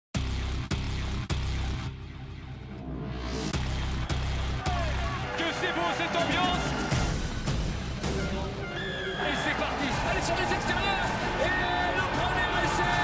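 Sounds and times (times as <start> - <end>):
dramatic trailer music: 0.1 - 13.0.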